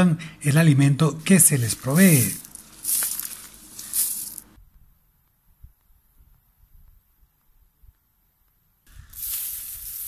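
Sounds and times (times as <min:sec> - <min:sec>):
seed pouring onto ground: 0:01.7 - 0:04.5, 0:09.0 - 0:10.0.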